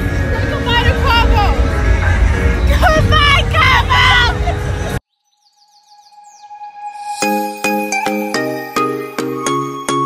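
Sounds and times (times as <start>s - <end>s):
background music: 0.0s - 5.0s, 5.8s - 10.0s
street noise: 0.0s - 5.1s
woman speaking sing-song: 0.4s - 1.7s
music with bird-like chirps: 4.6s - 10.0s.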